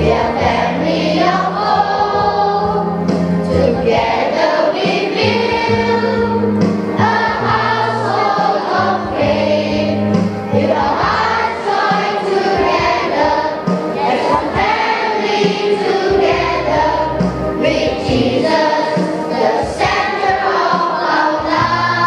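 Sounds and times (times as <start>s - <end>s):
children's choir singing: 0.0s - 22.0s.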